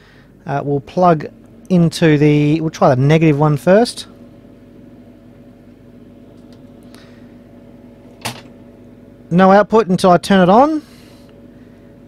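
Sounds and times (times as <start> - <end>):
cooling fan humming: 0.0 - 12.0.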